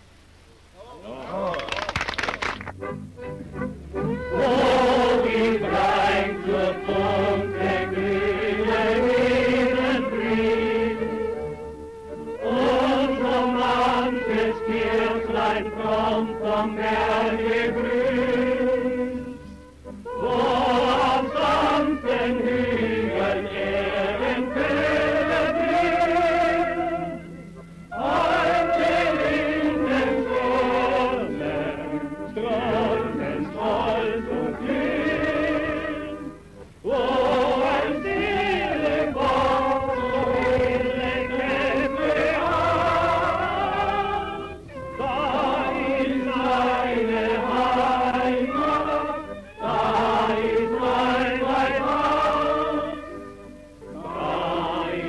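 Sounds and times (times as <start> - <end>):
choir singing in harmony: 2.8 - 55.0.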